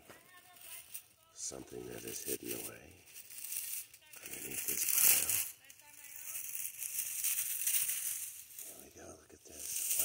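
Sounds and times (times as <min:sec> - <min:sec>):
pine needles and leaves rustling: 0:00.0 - 0:10.0.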